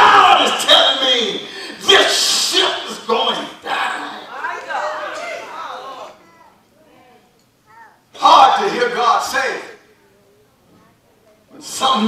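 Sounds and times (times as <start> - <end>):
man preaching: 0.0 - 4.4, 8.1 - 9.8, 11.6 - 12.0.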